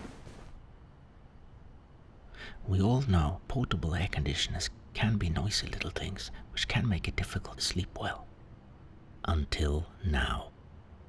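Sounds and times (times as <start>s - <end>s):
faint low hum and hiss: 0.0s - 11.0s.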